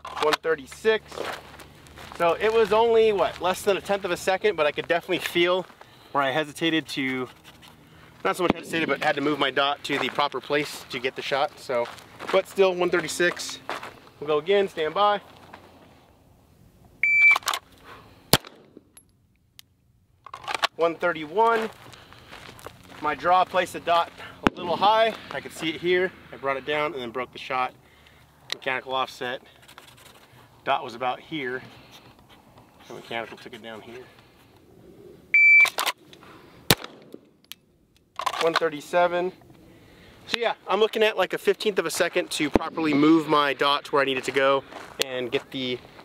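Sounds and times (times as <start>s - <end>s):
pistol shot: 8.4s - 9.2s, 18.3s - 18.8s, 24.4s - 24.7s, 36.7s - 37.2s
shot timer beep: 17.0s - 17.4s, 35.4s - 35.8s.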